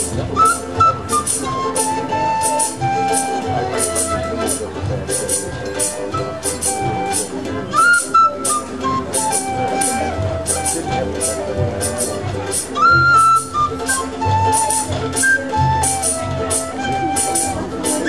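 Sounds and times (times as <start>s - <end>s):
penny whistle melody: 0.0s - 18.0s
strummed guitars and banjo: 0.0s - 18.0s.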